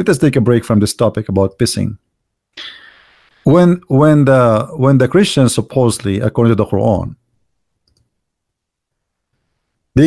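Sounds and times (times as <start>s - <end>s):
man's voice: 3.5s - 7.2s
computer mouse click: 7.8s - 8.1s.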